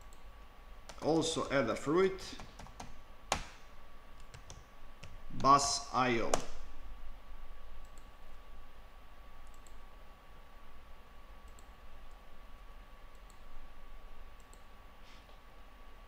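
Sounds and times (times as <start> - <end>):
computer mouse clicking: 0.0 - 0.3, 0.9 - 1.1, 4.2 - 5.5, 7.8 - 8.1, 9.4 - 9.8, 11.4 - 12.2, 13.1 - 13.5, 14.4 - 14.7
faint steady hum: 0.0 - 16.0.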